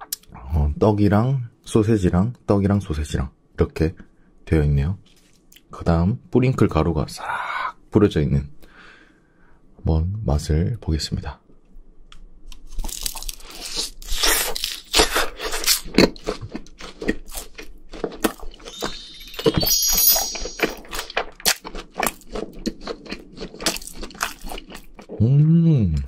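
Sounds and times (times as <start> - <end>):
crunchy chewing: 12.5 - 19.0, 20.7 - 25.2
twinkling sound effect: 18.6 - 21.1.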